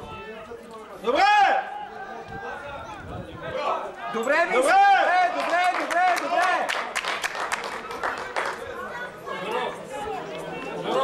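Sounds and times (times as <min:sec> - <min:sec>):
spectators talking: 0:00.0 - 0:11.0
sharp hand claps: 0:05.4 - 0:08.6.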